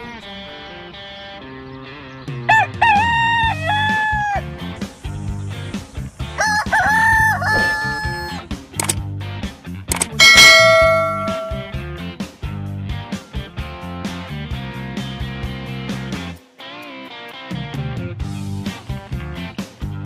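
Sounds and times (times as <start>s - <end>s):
background music: 2.2s - 9.0s
rooster crowing: 2.5s - 4.4s, 6.4s - 8.4s
loud bright ringing tone: 9.9s - 11.8s.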